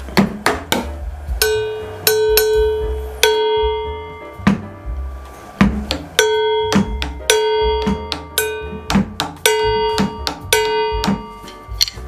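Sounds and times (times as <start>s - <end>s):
kick drum thumps: 0.0s - 11.3s
drum kit groove: 0.0s - 12.0s
ringing metallic cymbal hit: 1.4s - 4.5s, 6.2s - 11.7s.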